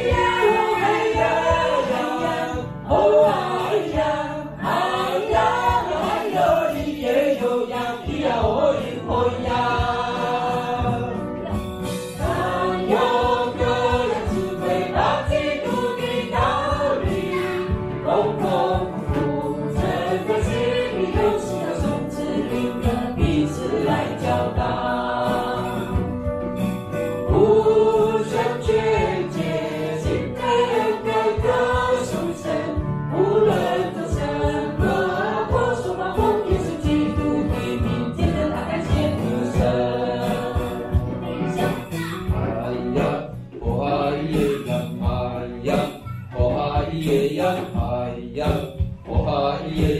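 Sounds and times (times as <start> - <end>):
woman singing into a microphone: 0.0 - 11.4, 30.0 - 43.0
choir singing a church song: 0.0 - 49.9.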